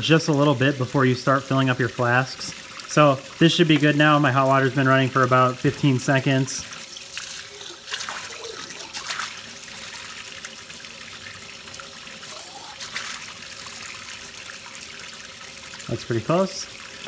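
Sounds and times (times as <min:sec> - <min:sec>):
faucet water running into flask: 0:00.0 - 0:17.0
water splashing into sink: 0:00.0 - 0:17.0.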